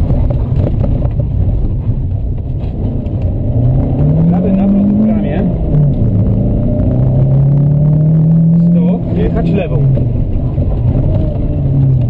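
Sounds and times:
car engine accelerating hard: 0:00.0 - 0:12.0.

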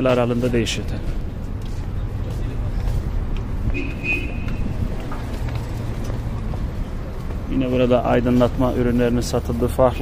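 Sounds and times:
motor vehicle engine rumble: 0:00.0 - 0:10.0.

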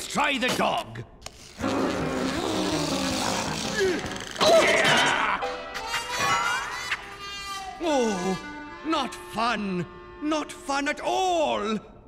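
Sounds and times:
rough cartoon noise: 0:01.4 - 0:05.3.

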